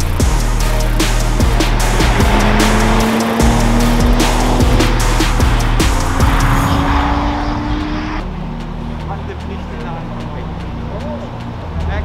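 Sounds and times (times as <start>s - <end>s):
background music: 0.0s - 12.0s
car engine revving: 0.0s - 12.0s.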